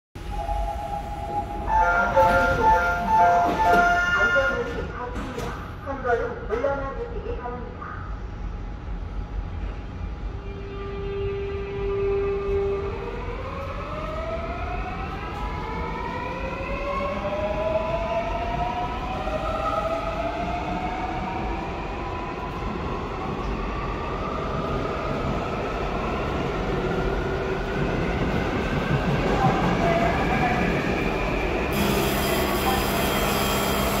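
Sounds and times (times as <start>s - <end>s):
train wheel and running noise: 2.0s - 6.0s, 26.7s - 34.0s
electric train motor whine: 31.8s - 34.0s.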